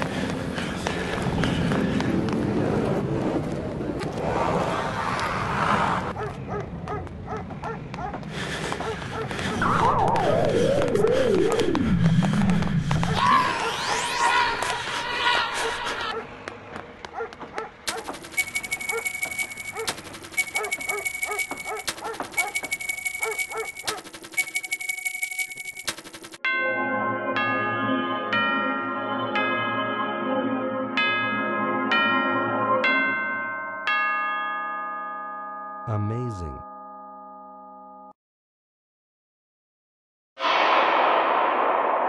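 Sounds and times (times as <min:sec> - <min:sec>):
dog barking: 0:06.1 - 0:08.2, 0:16.0 - 0:16.3, 0:17.1 - 0:18.1, 0:18.8 - 0:24.1.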